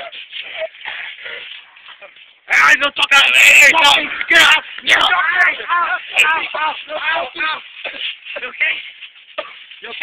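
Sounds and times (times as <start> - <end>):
bodies and clothing scuffling: 0.0 - 10.0.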